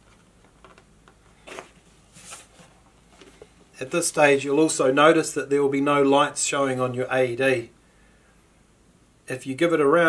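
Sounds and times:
plastic casing handling noise: 0:00.0 - 0:03.7.

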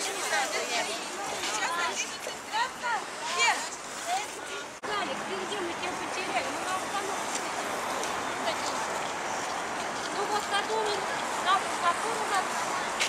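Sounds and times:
people's voices: 0:00.0 - 0:13.0
traffic noise: 0:00.0 - 0:13.0.

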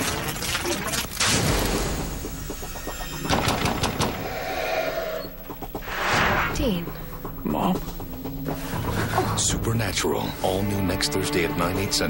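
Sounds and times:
low hum: 0:01.8 - 0:10.0.

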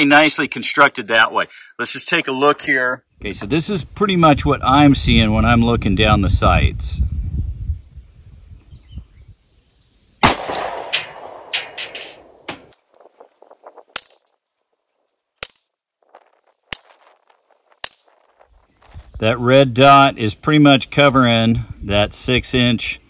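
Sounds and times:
pistol shots with echo: 0:10.2 - 0:12.5.

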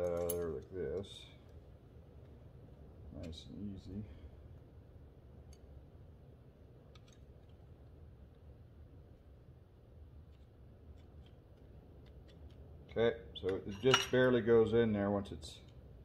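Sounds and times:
small metal clicks: 0:00.0 - 0:01.6, 0:06.9 - 0:07.6, 0:10.3 - 0:12.6
low steady hum: 0:00.0 - 0:16.0.

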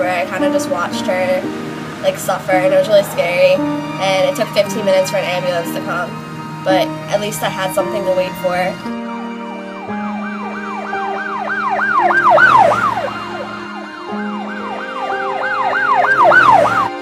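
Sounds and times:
sustained music chords: 0:00.0 - 0:17.0
ambulance siren yelp: 0:08.7 - 0:17.0.

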